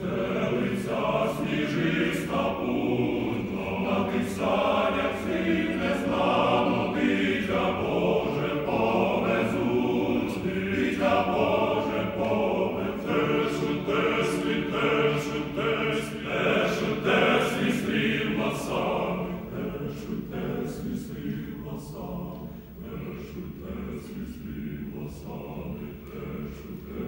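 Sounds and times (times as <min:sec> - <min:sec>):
men's choir singing a cappella: 0:00.0 - 0:27.0.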